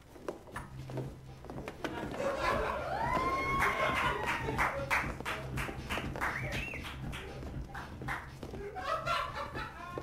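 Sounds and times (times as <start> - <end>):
disco dance music: 0.1 - 10.0
sharp claps: 3.6 - 8.2.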